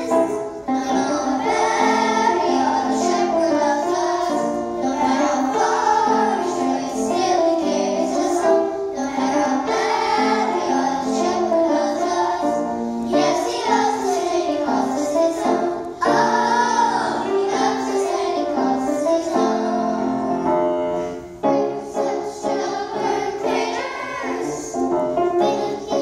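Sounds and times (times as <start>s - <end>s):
children's choir singing: 0.0s - 26.0s.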